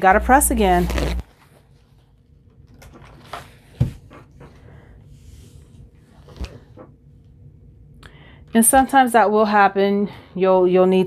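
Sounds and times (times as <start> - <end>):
paper towel rustling: 0.2 - 2.3.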